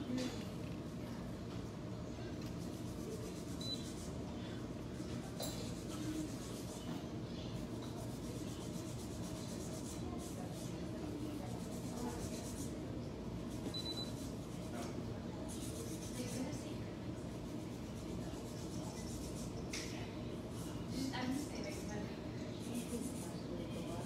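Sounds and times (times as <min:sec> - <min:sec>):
steady low hum: 0:00.0 - 0:24.0
brush scratching on nail: 0:02.4 - 0:04.2, 0:05.2 - 0:24.0.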